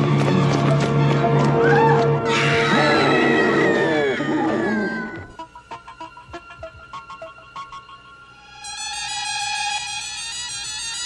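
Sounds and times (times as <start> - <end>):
person screaming: 2.6 - 5.2.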